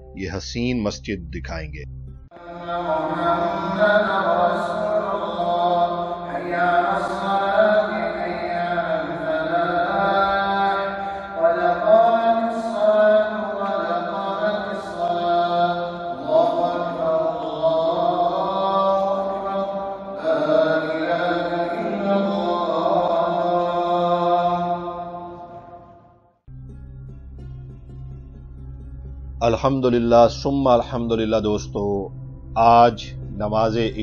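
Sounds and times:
man chanting a prayer call: 0.2s - 1.8s, 2.4s - 25.0s, 29.4s - 34.0s.

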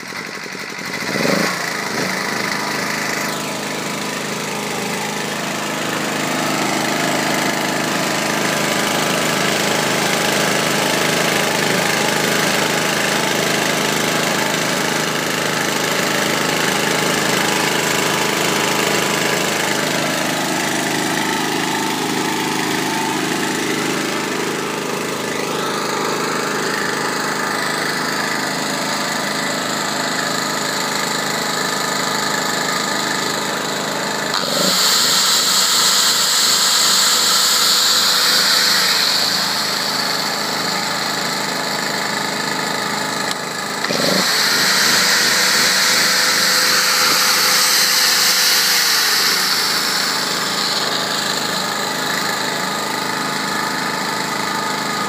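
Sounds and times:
angle grinder whining: 0.0s - 55.0s
generator engine running: 0.0s - 55.0s.

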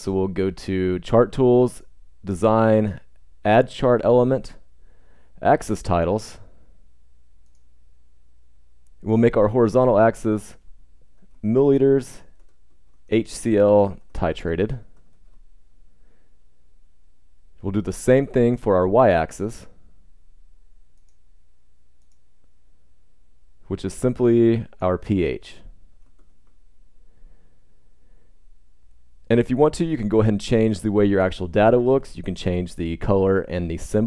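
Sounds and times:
low steady hum: 0.0s - 34.0s
faint computer mouse clicks: 7.4s - 7.7s, 22.0s - 22.2s.

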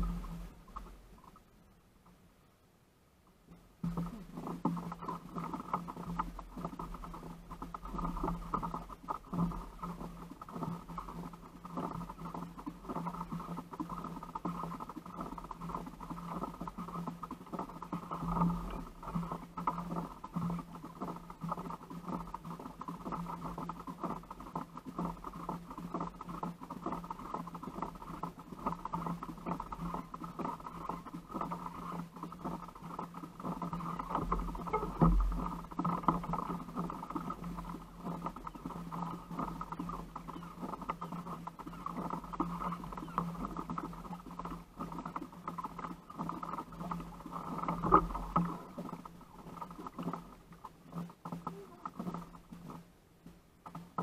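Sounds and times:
knocks and creaks from kayak hull: 0.0s - 1.4s, 3.5s - 54.0s
low hum: 0.0s - 53.4s.

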